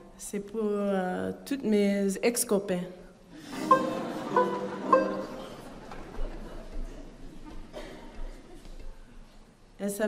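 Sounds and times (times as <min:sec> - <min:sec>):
banjo plucked notes: 0:03.6 - 0:06.3.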